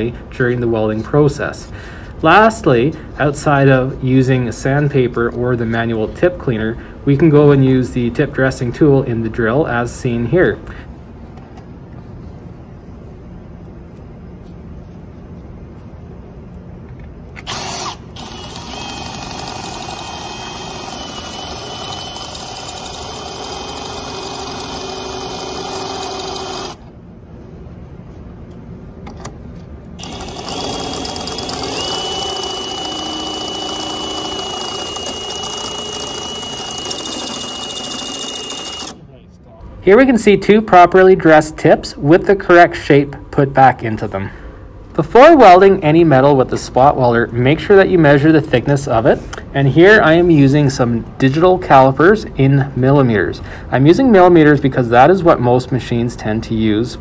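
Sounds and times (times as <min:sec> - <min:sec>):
cordless drill whining: 0:17.4 - 0:26.9, 0:30.0 - 0:39.0.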